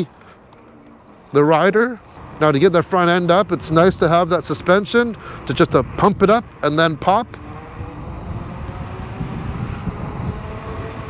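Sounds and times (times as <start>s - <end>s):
tyre noise on road: 0.0s - 11.0s
wind rumble on microphone: 2.2s - 11.0s.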